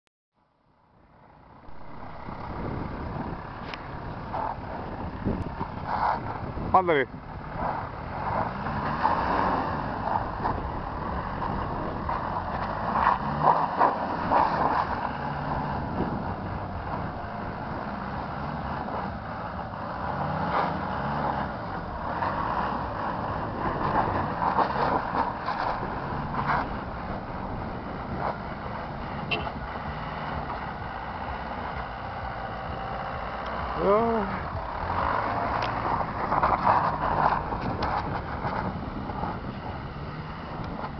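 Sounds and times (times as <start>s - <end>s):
tyre and road noise: 0.4s - 40.9s
car engine revving: 1.0s - 40.9s.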